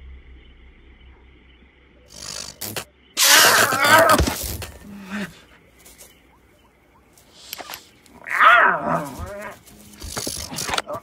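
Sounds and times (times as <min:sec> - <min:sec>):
cartoon animal-like vocal cry: 0:03.2 - 0:05.3.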